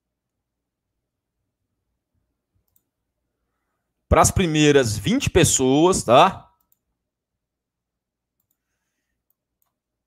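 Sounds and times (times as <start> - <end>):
faint click: 2.6 - 2.9, 8.4 - 9.8.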